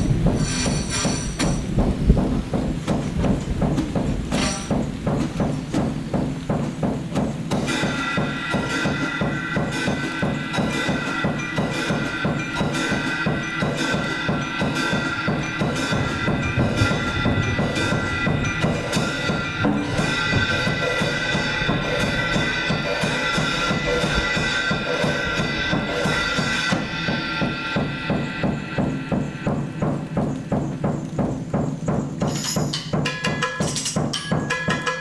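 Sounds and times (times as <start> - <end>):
drum kit played with sticks: 0.0 - 35.0
metallic ringing of high tones: 7.7 - 31.0.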